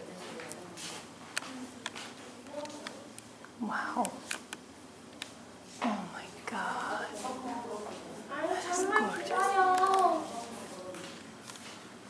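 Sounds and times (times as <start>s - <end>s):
people talking indistinctly: 5.8s - 11.2s.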